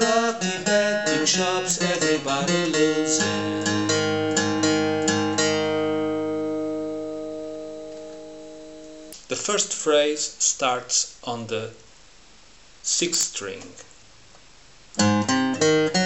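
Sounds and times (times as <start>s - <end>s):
acoustic guitar picked: 0.0s - 11.7s, 14.9s - 16.0s.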